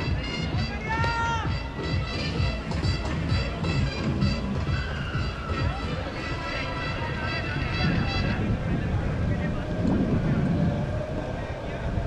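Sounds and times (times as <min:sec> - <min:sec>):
background music: 0:00.0 - 0:12.0
wind rumble on microphone: 0:00.0 - 0:12.0
indistinct voices: 0:04.6 - 0:12.0.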